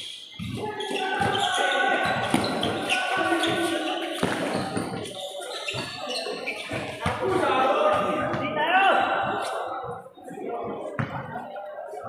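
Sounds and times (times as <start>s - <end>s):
players calling out: 0.0s - 11.4s.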